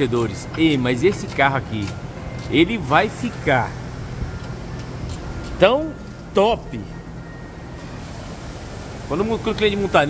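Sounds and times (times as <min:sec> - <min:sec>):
low machinery hum: 0:00.0 - 0:10.0
hiss: 0:08.0 - 0:10.0.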